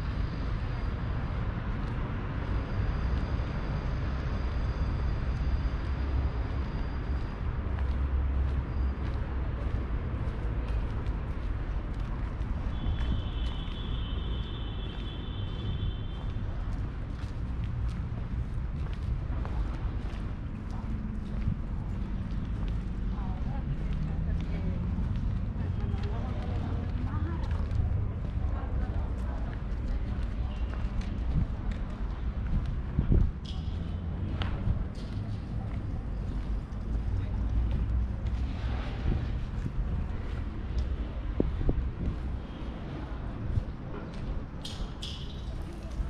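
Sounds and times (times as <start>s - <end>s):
steady low street rumble: 0.0s - 46.0s
footsteps on stone paving: 7.6s - 46.0s.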